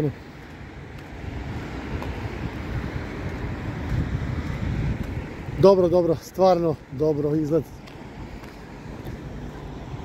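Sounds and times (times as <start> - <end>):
road traffic tyre noise: 0.0 - 10.0
wind buffeting microphone: 0.0 - 10.0.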